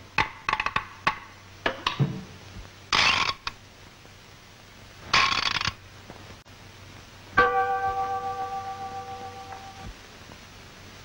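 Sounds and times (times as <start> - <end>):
ringing metallic clang: 7.4 - 9.9.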